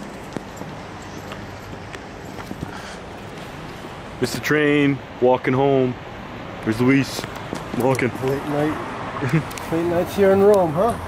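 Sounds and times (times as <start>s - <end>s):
footsteps on pavement: 0.0s - 4.4s, 7.1s - 8.8s
street ambience hiss: 0.0s - 11.0s.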